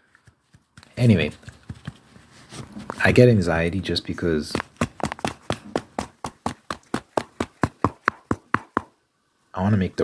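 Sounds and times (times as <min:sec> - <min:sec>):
rapid sharp taps: 0:00.0 - 0:02.2, 0:04.5 - 0:09.0.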